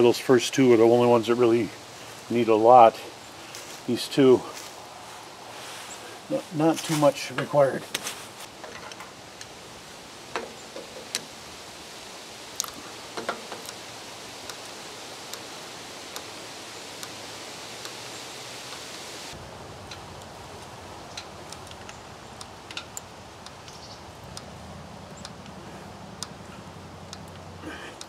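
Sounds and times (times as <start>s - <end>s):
steady background hiss: 0.0s - 28.0s.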